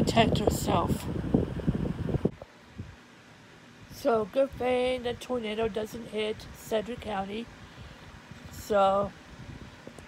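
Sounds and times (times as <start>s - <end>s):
person speaking: 0.0s - 1.2s, 3.9s - 7.5s
faint background hiss: 0.0s - 10.0s.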